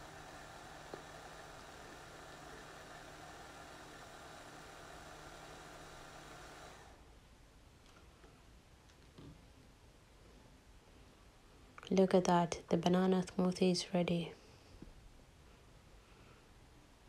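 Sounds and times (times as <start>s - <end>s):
hand blender motor running: 0.0s - 7.0s.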